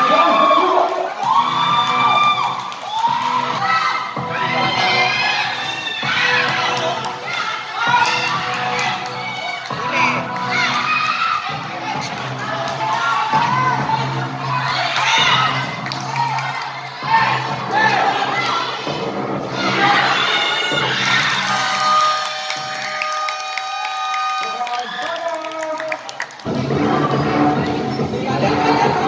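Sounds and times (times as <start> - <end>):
music: 0.0 - 24.5, 26.2 - 29.0
crowd shouting and cheering: 0.0 - 29.0.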